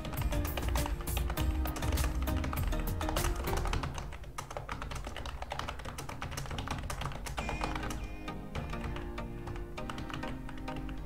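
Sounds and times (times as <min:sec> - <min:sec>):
background music: 0:00.0 - 0:11.0
keyboard typing: 0:00.0 - 0:11.0.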